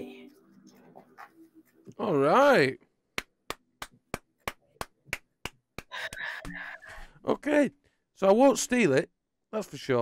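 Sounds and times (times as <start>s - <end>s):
person clapping slowly: 3.2s - 6.6s.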